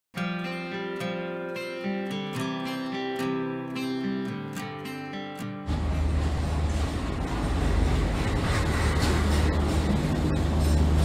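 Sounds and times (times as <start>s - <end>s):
locomotive engine rumble: 5.7s - 11.0s
train running noise: 5.7s - 11.0s.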